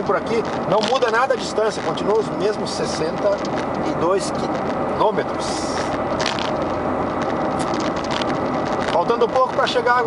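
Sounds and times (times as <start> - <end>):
road and engine noise inside car: 0.0 - 10.0.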